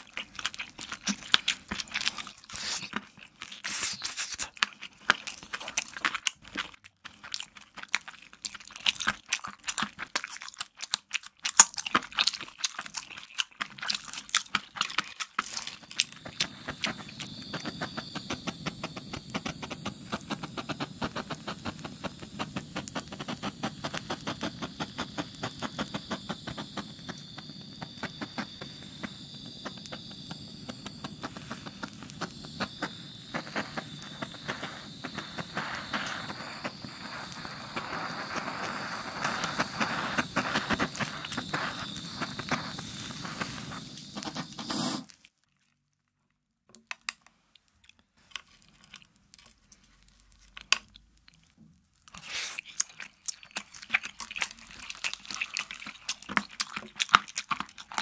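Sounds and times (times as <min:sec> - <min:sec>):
chewing hard candy: 0:00.0 - 0:45.8, 0:46.8 - 0:58.0
butane torch flame hissing: 0:02.3 - 0:03.0, 0:03.6 - 0:04.5, 0:16.0 - 0:45.1, 0:52.2 - 0:52.6.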